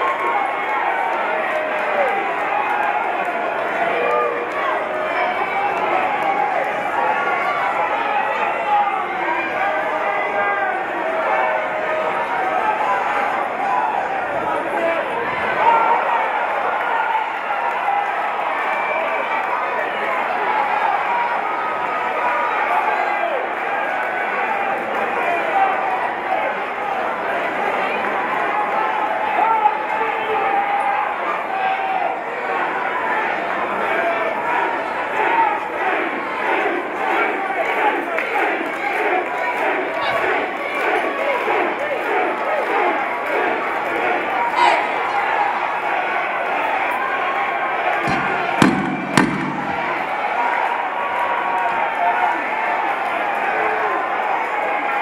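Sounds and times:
crowd shouting and cheering: 0.0s - 55.0s
faint sharp knocks: 48.0s - 50.1s.

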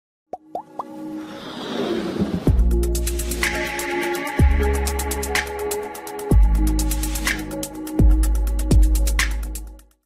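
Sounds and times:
intro music: 2.4s - 9.9s.

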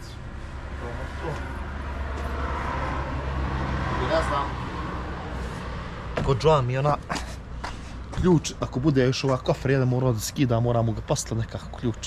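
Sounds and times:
low engine hum: 0.0s - 12.0s
vehicle road noise: 0.0s - 12.0s.

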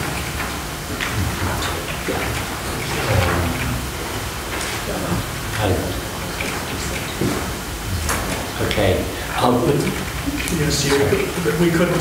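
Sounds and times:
low murmured voices: 0.0s - 12.0s
steady background hiss: 0.0s - 12.0s.

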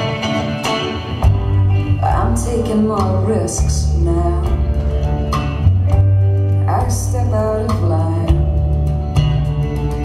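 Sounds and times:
resonator guitar playing: 0.0s - 10.0s.

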